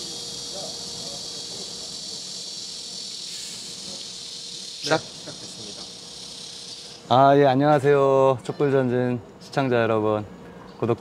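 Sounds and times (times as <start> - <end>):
insects chirping: 0.0 - 10.9.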